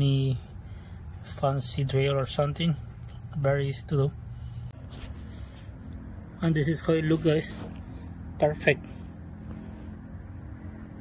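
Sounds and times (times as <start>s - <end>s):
insect chirping: 0.0s - 11.0s
low steady hum: 0.0s - 11.0s.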